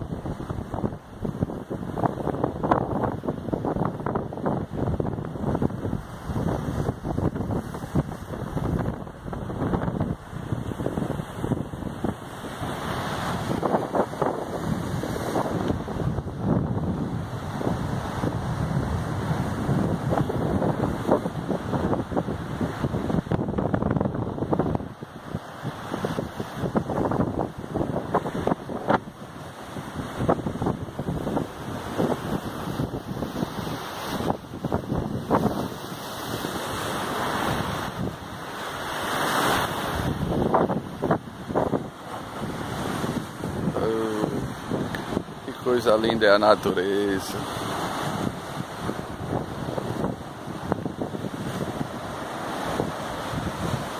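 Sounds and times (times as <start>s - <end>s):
surf breaking over rocks: 0.0s - 53.9s
wind buffeting microphone: 0.0s - 53.9s.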